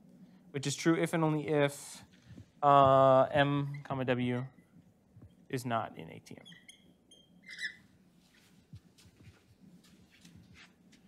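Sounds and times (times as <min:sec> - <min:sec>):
marker squeaking on whiteboard: 0:06.4 - 0:07.9.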